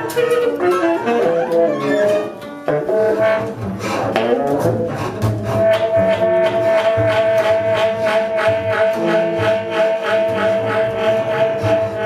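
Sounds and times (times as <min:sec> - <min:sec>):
bowed double bass: 0:00.0 - 0:12.0
tenor saxophone long note: 0:05.6 - 0:12.0.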